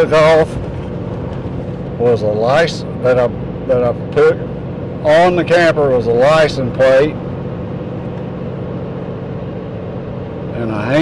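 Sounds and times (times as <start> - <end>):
low steady hum: 0.0 - 11.0
truck road and engine noise: 0.0 - 11.0.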